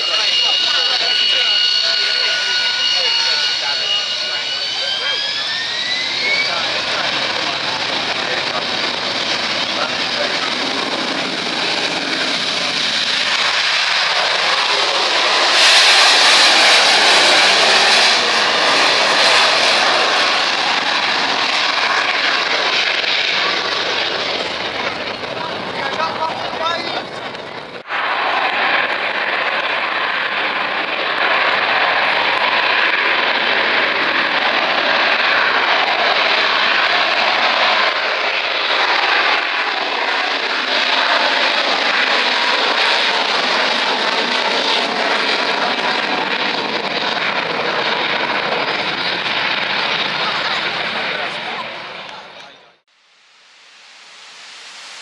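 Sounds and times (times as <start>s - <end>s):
jet engines roaring on takeoff: 0.0s - 55.0s.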